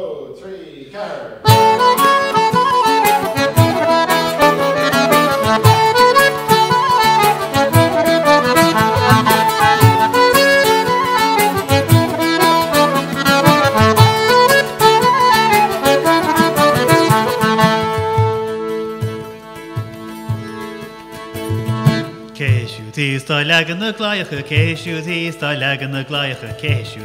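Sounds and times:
frame drum beat: 1.4 - 20.5, 24.5 - 25.1
accordion: 1.4 - 27.0
strummed string instrument: 1.4 - 27.0
flute: 1.5 - 22.2.

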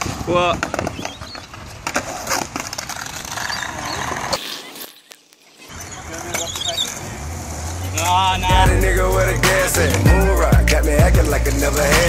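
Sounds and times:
skateboard clack: 0.0 - 8.2
skateboard wheels rolling: 0.0 - 12.0.

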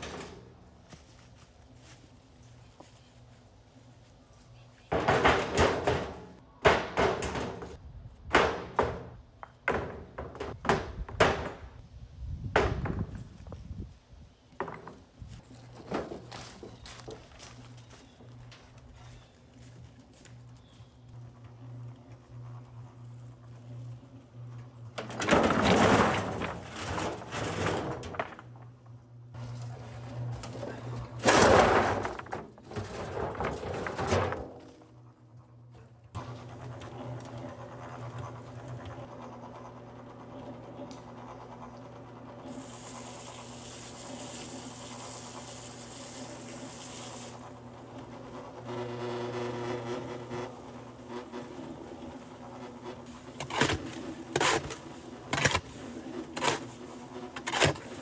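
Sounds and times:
cement mixer running: 20.1 - 58.0
water from hose running: 42.4 - 48.2.

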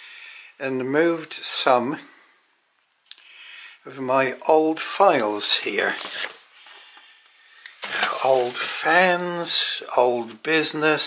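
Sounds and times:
paper files rustling: 5.6 - 9.2.

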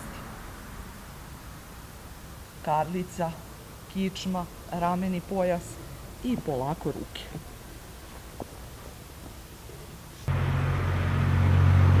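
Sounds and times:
loud low mechanical drone: 10.3 - 12.0.

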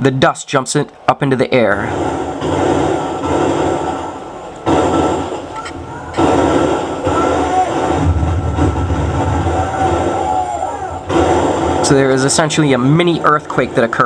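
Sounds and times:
muffled outdoor noise: 0.0 - 14.0
deep rumbling explosion boom: 6.2 - 12.1.

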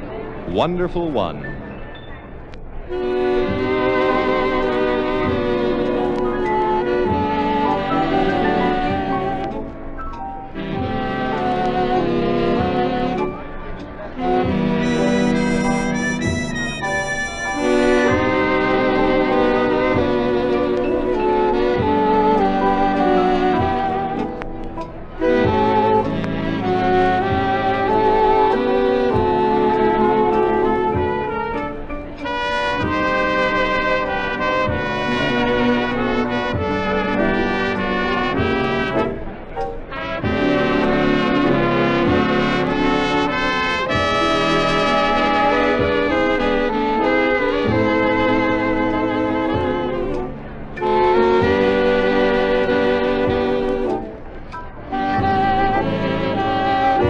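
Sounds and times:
big band waltz on old radio: 0.0 - 57.0.

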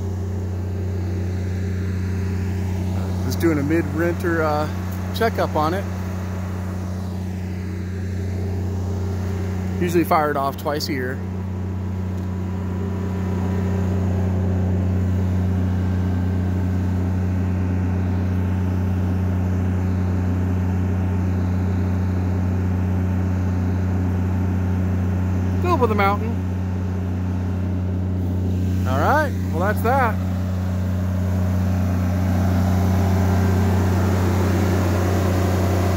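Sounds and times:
generator engine droning: 0.0 - 35.9.

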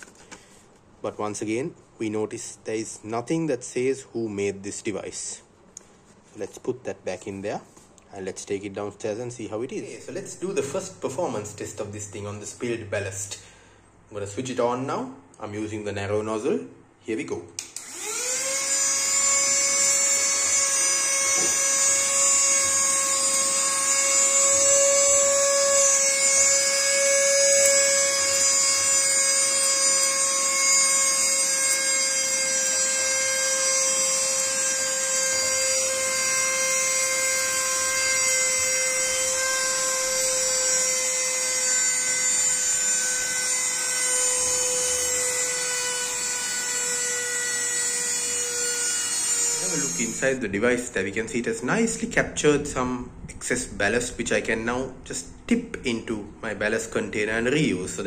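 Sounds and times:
mini vacuum motor whining: 17.8 - 50.2.

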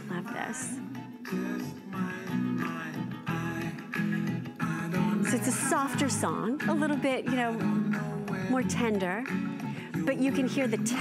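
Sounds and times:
soft song with male vocal: 0.0 - 11.0.

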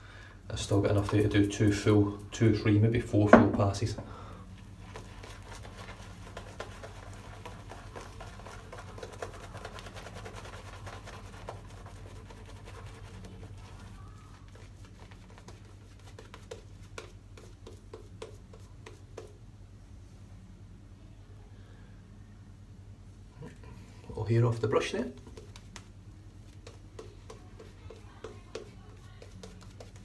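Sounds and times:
shaving brush crackling lather: 4.6 - 19.4, 25.0 - 30.0.

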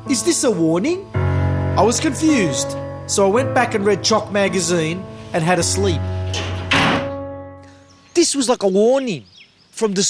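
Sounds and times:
held music chord: 0.0 - 8.1
door shutting with a thud: 6.2 - 7.3.

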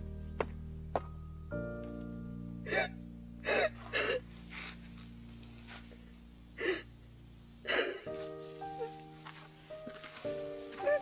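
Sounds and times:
soft background music: 0.0 - 11.0
person crying in gasps: 2.7 - 4.2, 6.6 - 6.9.

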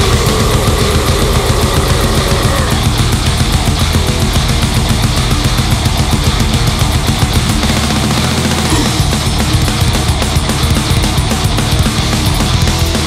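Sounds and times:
fast dense drumming: 0.0 - 13.0
heavy metal guitars: 0.0 - 13.0.

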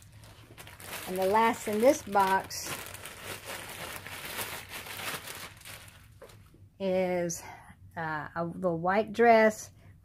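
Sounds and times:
plastic bag crinkling: 0.0 - 6.6.

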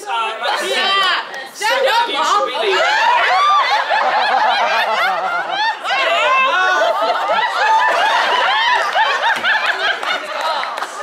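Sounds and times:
people laughing: 2.2 - 11.0.

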